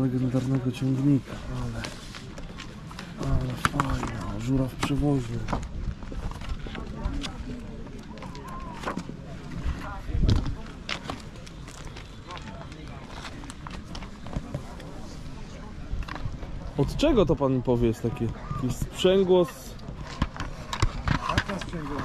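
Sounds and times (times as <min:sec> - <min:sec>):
faint voices talking: 0:00.0 - 0:22.0.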